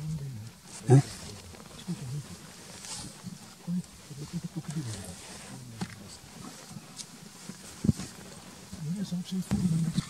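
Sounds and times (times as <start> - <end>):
hushed men's voices talking: 0.0 - 7.1.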